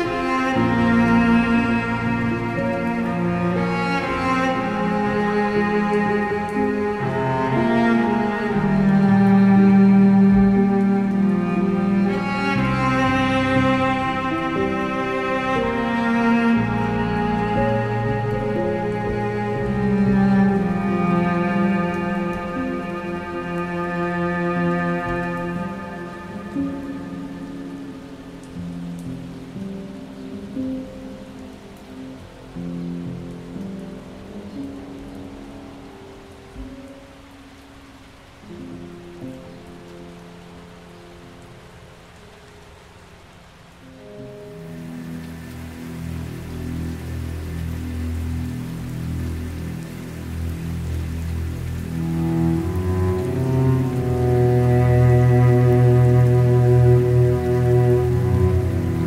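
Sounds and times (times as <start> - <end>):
slow piano and cello music: 0.0 - 59.0
steady rain: 0.0 - 59.0.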